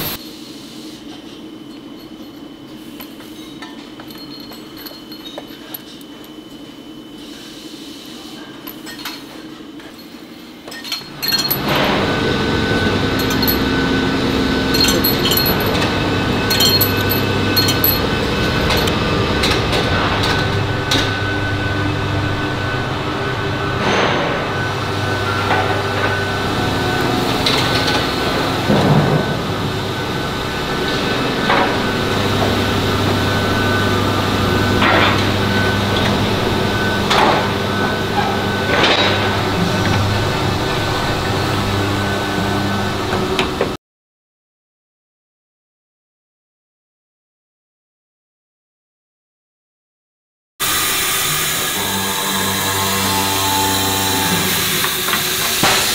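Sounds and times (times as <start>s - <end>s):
machinery hum with held tones: 0.0s - 43.8s, 50.6s - 55.9s
metal bars clanking: 1.7s - 6.4s, 10.7s - 12.0s, 12.8s - 13.8s, 14.7s - 18.9s.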